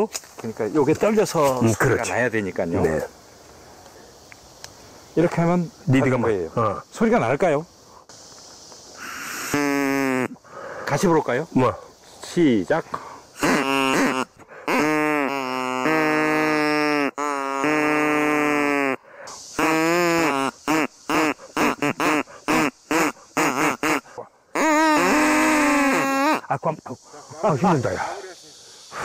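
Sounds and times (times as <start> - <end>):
player breathing: 10.4 - 10.9.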